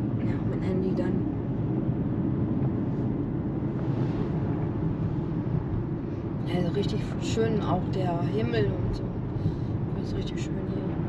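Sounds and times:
car road and engine rumble: 0:00.0 - 0:11.0.

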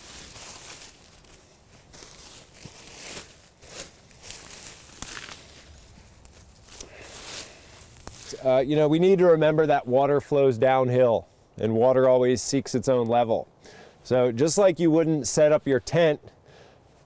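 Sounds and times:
hands sweeping leaf litter: 0:00.0 - 0:08.6.

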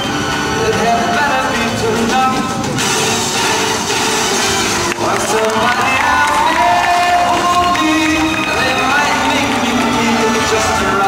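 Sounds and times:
crowd cheering: 0:00.0 - 0:11.0
show music: 0:00.0 - 0:11.0.

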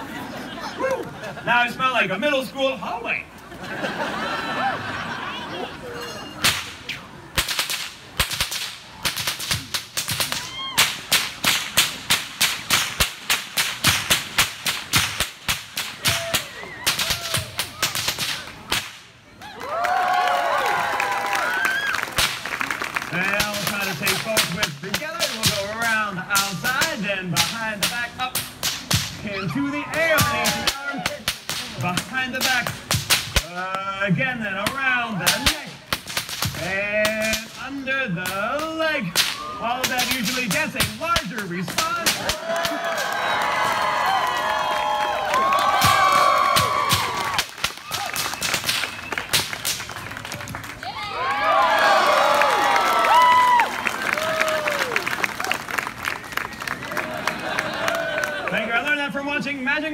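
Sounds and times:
whip cracking: 0:06.4 - 0:19.1, 0:22.1 - 0:22.5, 0:23.2 - 0:29.3, 0:29.9 - 0:33.7, 0:34.6 - 0:37.6, 0:38.2 - 0:43.1, 0:45.6 - 0:50.0.

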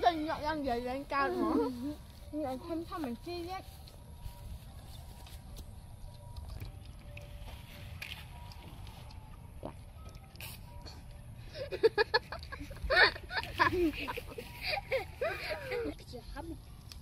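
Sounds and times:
girls laughing: 0:11.6 - 0:16.0.

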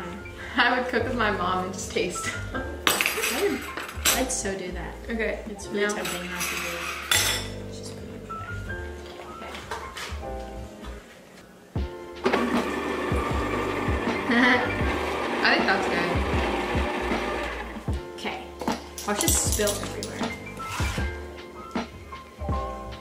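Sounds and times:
background music: 0:00.0 - 0:23.0
electric hand mixer running: 0:12.2 - 0:17.9.

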